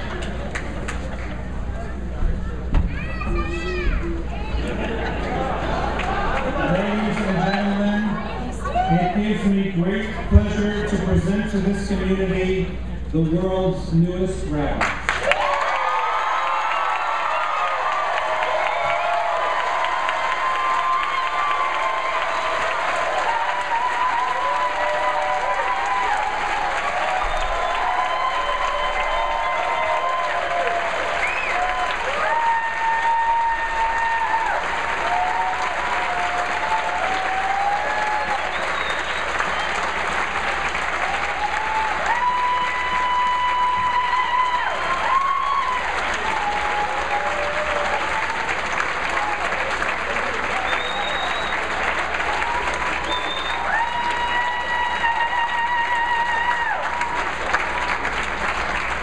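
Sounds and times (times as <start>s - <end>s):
audience applauding: 0.0s - 2.0s, 4.5s - 9.3s, 14.8s - 59.0s.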